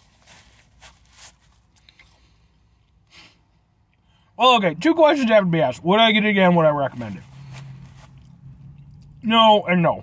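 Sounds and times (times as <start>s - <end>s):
paper napkin rustling: 6.9s - 8.3s.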